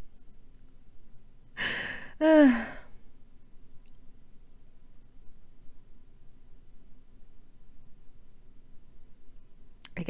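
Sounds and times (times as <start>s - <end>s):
person sighing: 1.6s - 2.9s.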